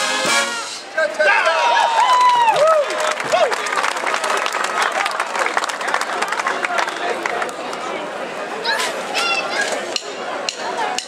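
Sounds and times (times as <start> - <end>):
whooping voices: 1.2 - 3.7
audience applauding and cheering: 1.3 - 7.9.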